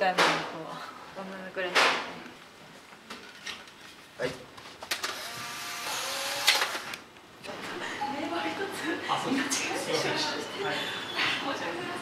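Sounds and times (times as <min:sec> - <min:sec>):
small motor whirring: 0:05.0 - 0:07.0.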